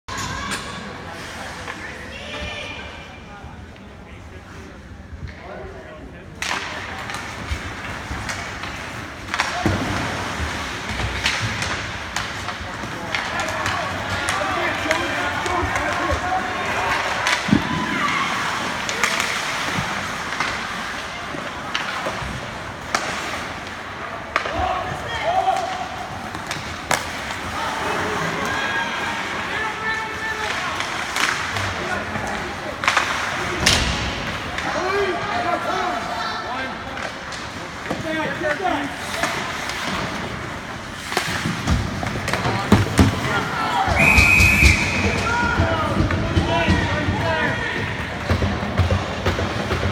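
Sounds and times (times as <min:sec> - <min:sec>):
sticks and puck clacking on boards: 0:06.3 - 0:49.9
skates scraping ice: 0:06.4 - 0:49.9.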